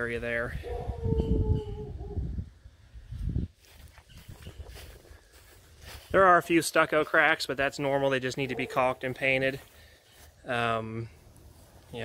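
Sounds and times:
faint outdoor background: 0.0s - 12.0s
wind rumble on microphone: 0.3s - 6.2s.

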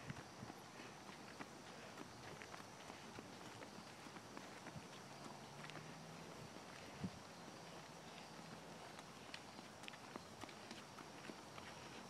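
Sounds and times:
footsteps on concrete: 0.0s - 12.0s.

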